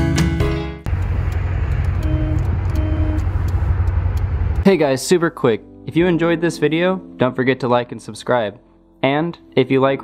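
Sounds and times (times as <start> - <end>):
car engine drone: 0.8 - 4.6
road noise: 0.8 - 4.7
car horn toots: 1.9 - 3.3.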